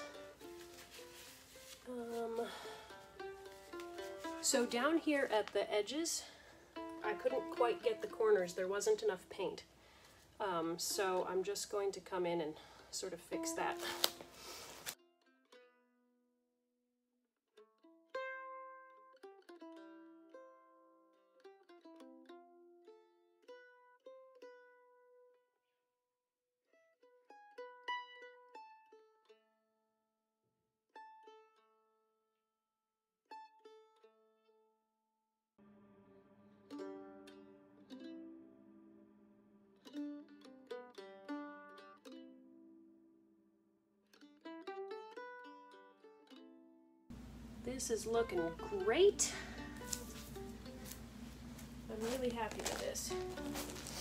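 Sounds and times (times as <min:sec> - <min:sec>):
plucked string notes: 0:00.0 - 0:09.7, 0:10.4 - 0:14.4, 0:35.7 - 0:43.3, 0:44.0 - 0:54.0.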